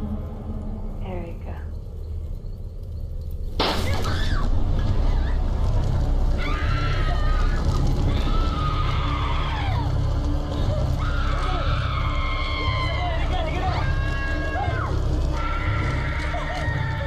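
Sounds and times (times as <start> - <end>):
film music: 0.0 - 17.0
low rumble: 0.0 - 17.0
people screaming and wailing: 3.8 - 17.0.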